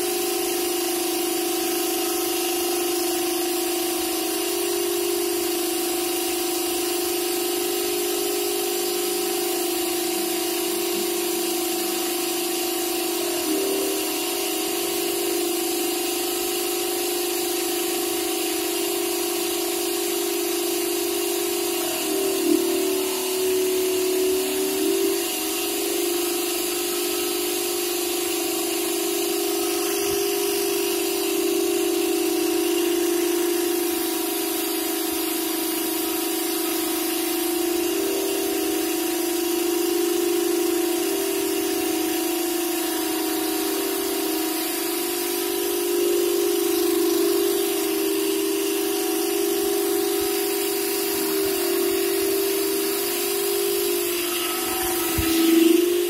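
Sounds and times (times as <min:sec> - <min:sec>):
carpet vacuum running: 0:00.0 - 0:56.0.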